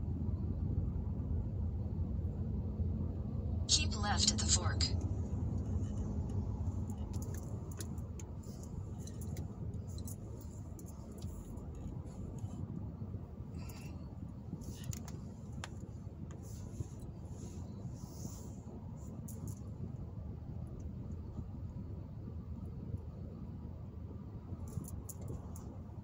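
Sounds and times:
engine and tyre rumble: 0.0s - 26.0s
light clicks and rattles: 5.0s - 12.6s, 14.6s - 16.4s, 24.6s - 25.8s.

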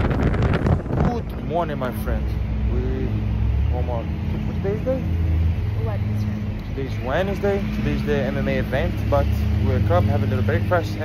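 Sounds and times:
traffic engine drone: 0.0s - 11.0s
people talking: 1.0s - 5.1s, 5.8s - 11.0s.

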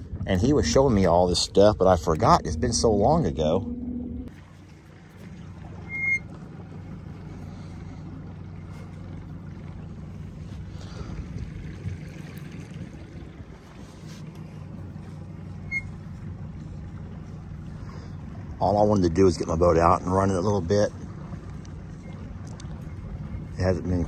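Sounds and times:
boat motor running: 0.0s - 24.0s
short high chirps: 5.8s - 6.2s.

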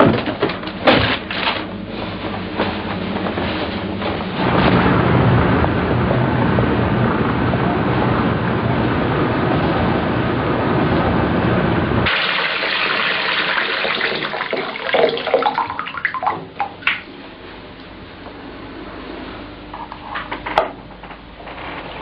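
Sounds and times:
steady rumbling noise: 0.0s - 22.0s
water running from bath tap: 12.1s - 17.0s.

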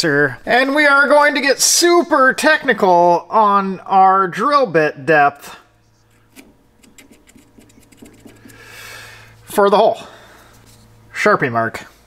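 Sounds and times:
marker rubbing on steel drill bit: 5.9s - 8.6s.

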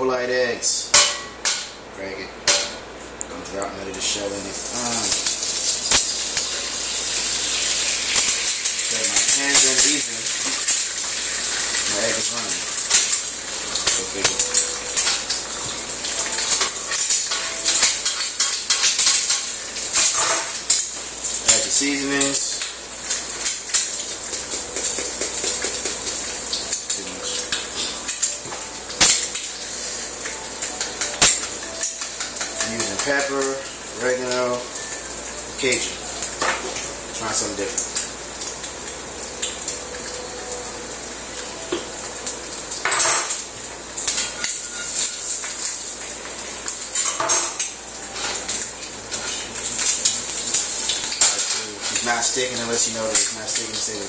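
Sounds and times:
egg sizzling in frying pan: 4.1s - 54.0s.

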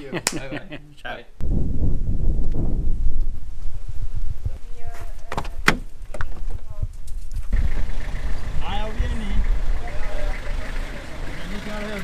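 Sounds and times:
minibus engine rumbling: 7.4s - 12.0s.

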